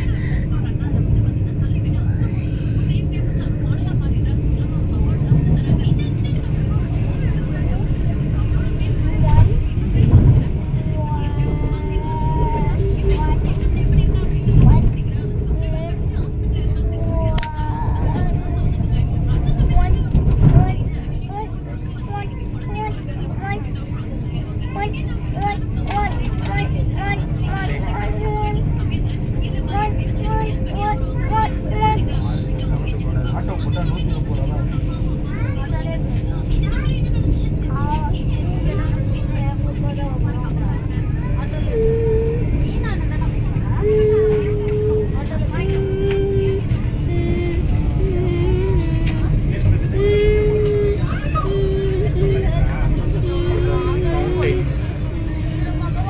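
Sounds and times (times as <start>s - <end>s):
passengers' voices: 0.0s - 56.0s
train rumble with hum: 0.0s - 56.0s.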